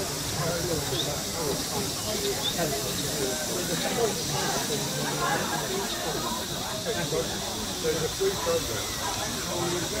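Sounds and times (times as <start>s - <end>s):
model steam locomotive hissing: 0.0s - 10.0s
people talking faintly: 0.0s - 10.0s.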